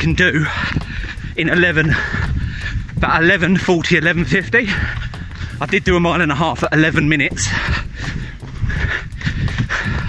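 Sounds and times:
jogging footfalls: 0.0s - 10.0s
heavy breathing: 0.3s - 3.0s, 4.6s - 5.7s, 7.4s - 10.0s.

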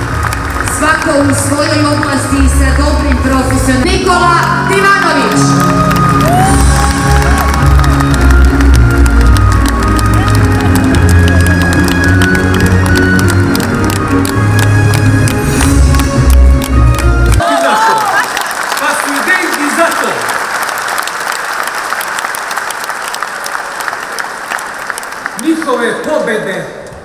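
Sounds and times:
crowd clapping in rhythm: 0.0s - 27.0s
crowd cheering and whooping: 5.5s - 14.3s, 16.9s - 18.5s.

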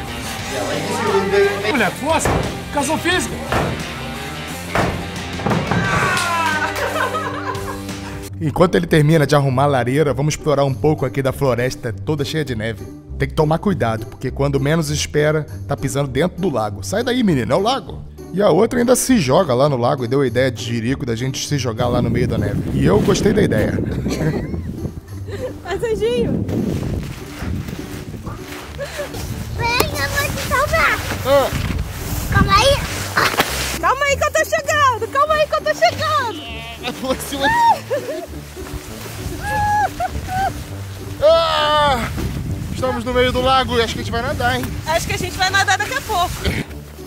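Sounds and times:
background music: 0.0s - 47.0s
axe splitting firewood: 1.7s - 6.5s, 33.1s - 33.6s
man crying out: 5.7s - 6.9s, 36.4s - 37.9s, 41.2s - 42.1s
snow crunching and swishing: 22.1s - 47.0s.

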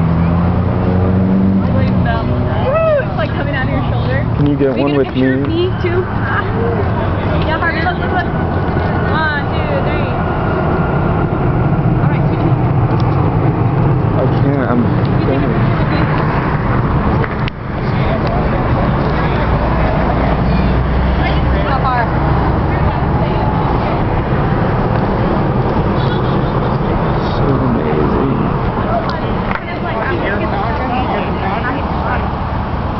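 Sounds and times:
highway traffic rumble: 0.0s - 32.9s
people chatting: 1.6s - 10.2s, 14.2s - 16.2s, 17.8s - 24.2s, 26.0s - 32.4s.

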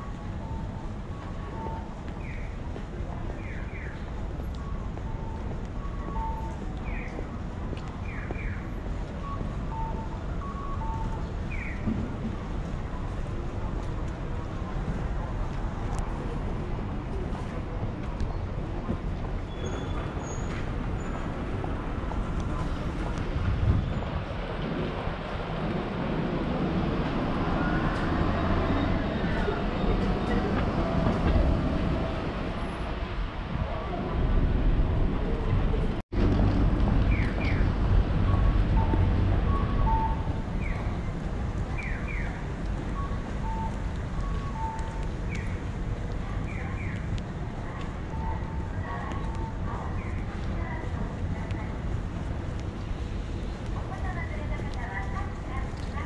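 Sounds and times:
traffic noise: 0.0s - 56.0s.

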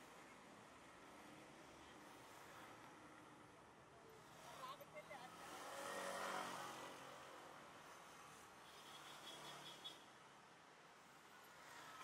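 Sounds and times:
scooter engine passing by: 5.4s - 6.9s.

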